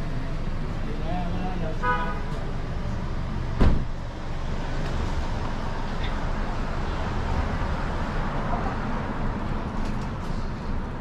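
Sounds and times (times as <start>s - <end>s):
steady traffic noise: 0.0s - 11.0s
sharp thump: 3.6s - 3.9s.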